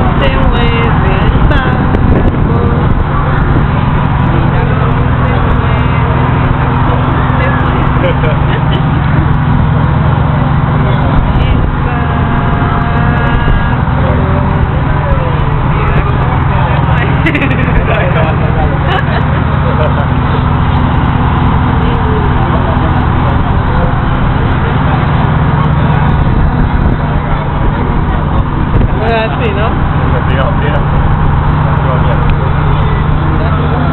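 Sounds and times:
boat engine droning: 0.0s - 33.9s
people talking: 0.0s - 33.9s.

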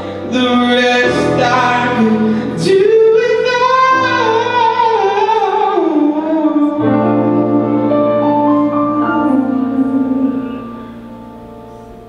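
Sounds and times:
sustained piano chords: 0.0s - 12.0s.

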